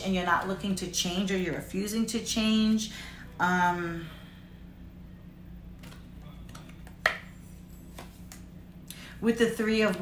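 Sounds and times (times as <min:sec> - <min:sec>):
steady low hum: 0:00.0 - 0:10.0
cards clicking: 0:05.8 - 0:07.2.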